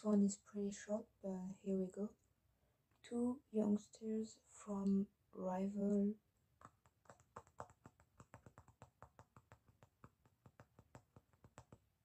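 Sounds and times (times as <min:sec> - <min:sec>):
person speaking: 0:03.0 - 0:06.2.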